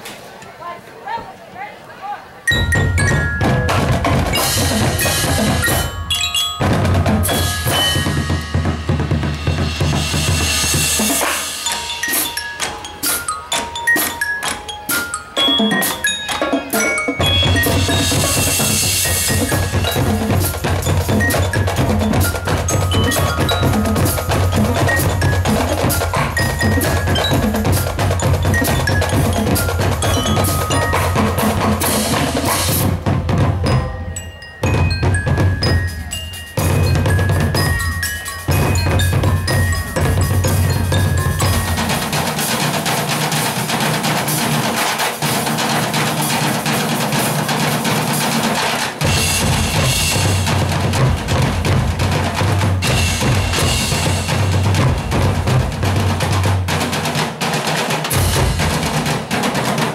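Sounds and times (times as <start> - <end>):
mallet keyboards ringing: 2.5 - 46.6, 47.2 - 59.9
snare drums: 2.5 - 59.9
bass drums: 2.6 - 11.5, 17.2 - 44.8, 49.0 - 57.2, 58.1 - 59.7.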